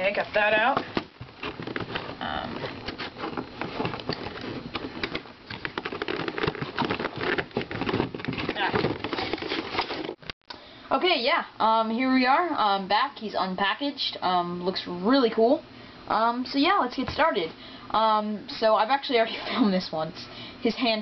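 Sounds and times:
plastic packaging crinkling: 0.0s - 10.2s.

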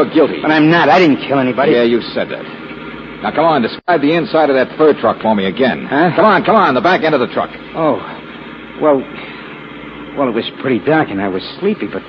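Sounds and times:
man speaking: 0.0s - 2.6s, 3.2s - 8.2s, 8.8s - 9.2s, 10.2s - 12.0s.

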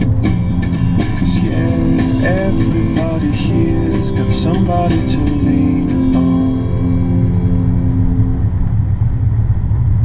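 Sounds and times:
music note: 0.0s - 9.0s
car driving on road: 0.0s - 10.0s.

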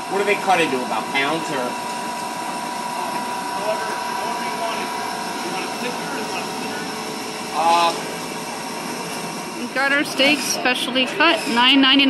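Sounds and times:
refrigeration machinery hum: 0.0s - 12.0s
faint voices: 2.8s - 8.7s, 9.5s - 12.0s.

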